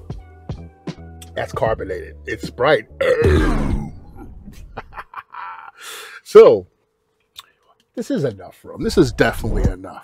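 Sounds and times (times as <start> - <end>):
man clearing his throat: 3.0 - 4.5.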